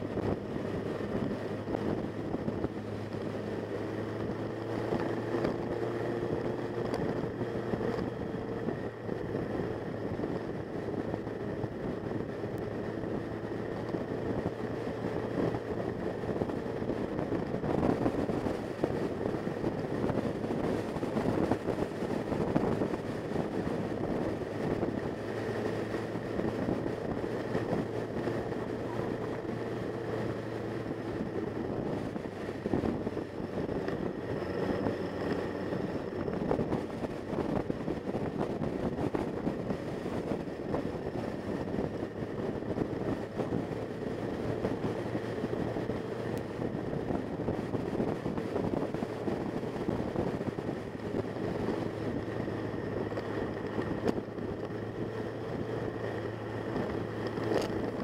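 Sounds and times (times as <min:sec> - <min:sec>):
motorcycle engine running: 0:00.0 - 0:58.0
wind and road rush: 0:00.0 - 0:58.0.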